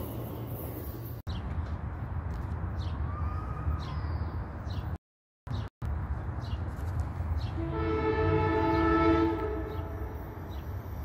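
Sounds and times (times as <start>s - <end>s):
train horn blast: 7.6s - 10.5s.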